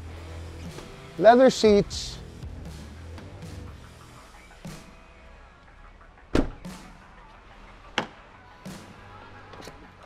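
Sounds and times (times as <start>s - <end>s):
truck door heavy thud: 6.3s - 6.8s.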